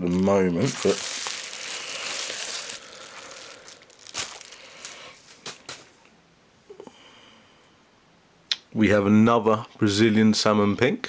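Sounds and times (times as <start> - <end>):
packaging crinkling: 0.0 - 6.0.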